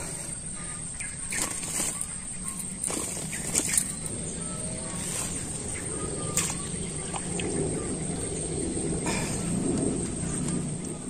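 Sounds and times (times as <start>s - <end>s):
high insect whine: 0.0s - 11.0s
fish flapping and thrashing: 1.3s - 4.2s, 4.8s - 8.0s.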